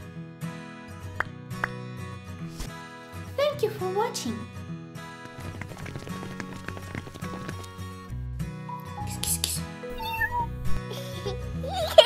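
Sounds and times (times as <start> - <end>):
cartoon cat meow: 9.9 - 10.6.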